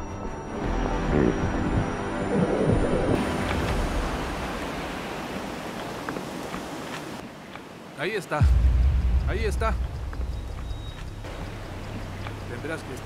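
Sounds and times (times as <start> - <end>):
water rushing from swimmer: 3.0 - 8.1.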